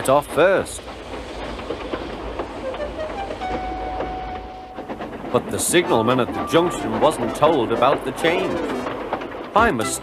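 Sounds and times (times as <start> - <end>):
steam train rumble: 0.0 - 10.0.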